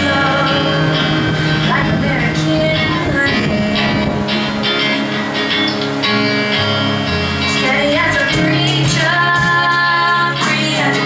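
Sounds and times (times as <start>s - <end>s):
woman singing: 0.0s - 4.5s, 7.4s - 11.0s
live country band: 0.0s - 11.0s.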